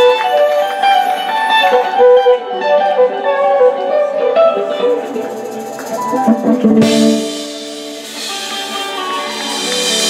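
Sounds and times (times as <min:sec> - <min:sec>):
acoustic guitar playing: 0:00.0 - 0:10.0
violin melody: 0:00.0 - 0:10.0.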